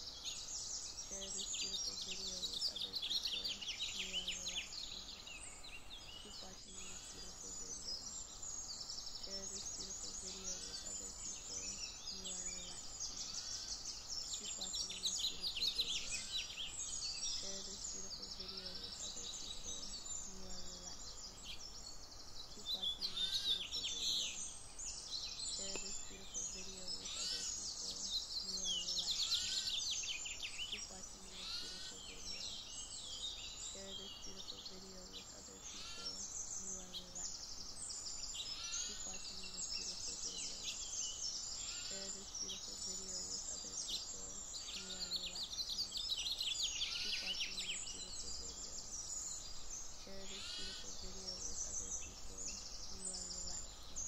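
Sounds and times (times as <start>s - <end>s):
songbirds chirping and trilling: 0.0s - 54.0s.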